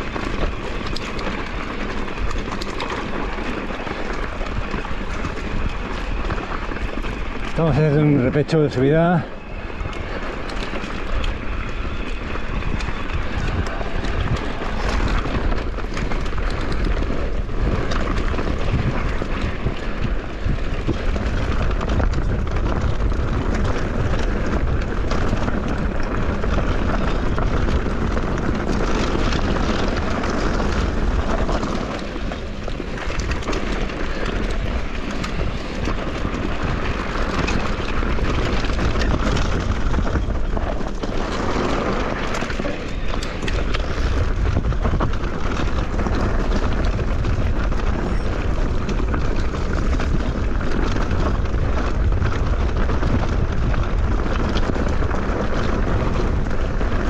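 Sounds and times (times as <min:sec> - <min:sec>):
bike rattling: 0:00.0 - 0:57.0
tyres crunching on gravel: 0:00.0 - 0:57.0
wind buffeting microphone: 0:00.0 - 0:57.0.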